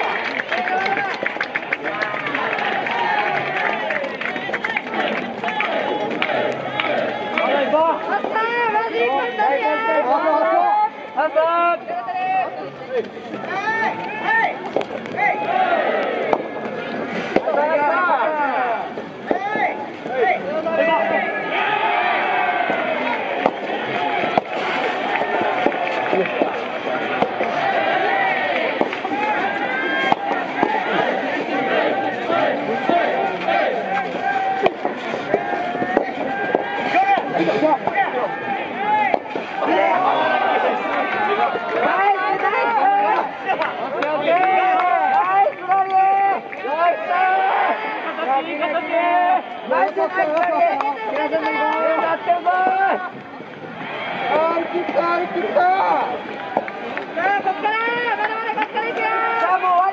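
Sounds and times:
voices shouting and calling: 0:01.8 - 0:59.9
rackets striking ball: 0:22.6 - 0:31.1, 0:32.8 - 0:38.0, 0:39.0 - 0:39.7.

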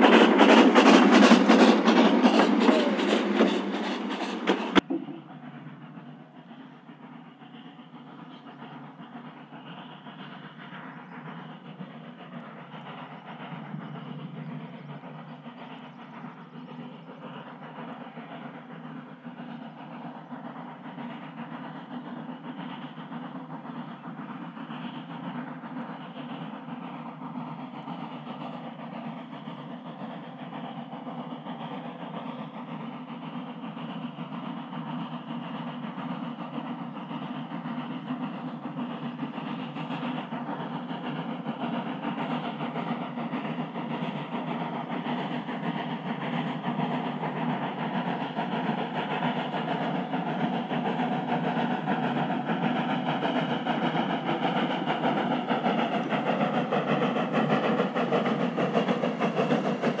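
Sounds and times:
steam railcar running on rails: 0:00.0 - 1:00.0.

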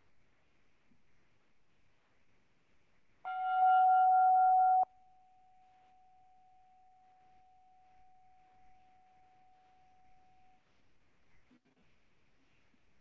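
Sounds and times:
struck chime ringing: 0:03.3 - 0:04.9.

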